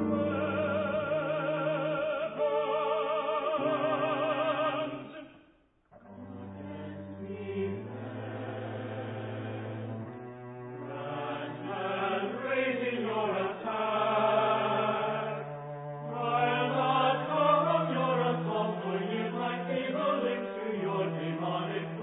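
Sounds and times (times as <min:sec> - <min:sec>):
choir singing sustained lines: 0:00.0 - 0:22.0.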